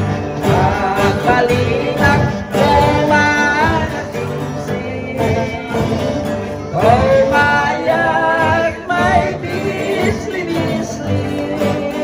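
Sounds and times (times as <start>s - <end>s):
acoustic guitars strumming: 0.0s - 12.0s
man singing into a microphone: 0.0s - 12.0s.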